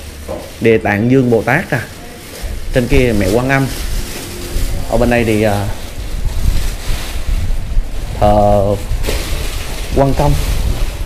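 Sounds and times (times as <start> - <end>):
wind buffeting microphone: 2.4 - 11.0.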